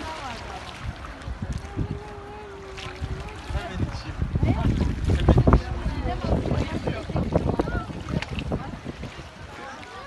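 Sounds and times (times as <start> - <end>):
wind buffeting microphone: 0.0 - 10.0
people talking: 1.5 - 10.0.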